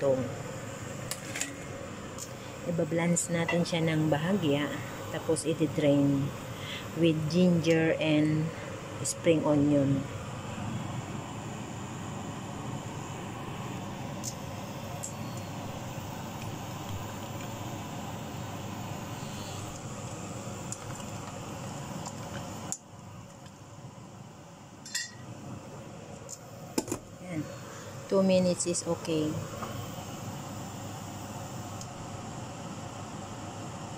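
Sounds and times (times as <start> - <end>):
pot heating rushing noise: 0.0 - 24.1, 24.8 - 33.9
utensils clinking on cookware: 24.9 - 25.2.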